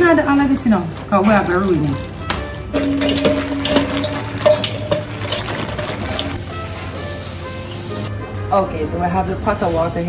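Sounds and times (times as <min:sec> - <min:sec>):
background music: 0:00.0 - 0:10.0
tap water running into steel bowl: 0:02.8 - 0:06.4.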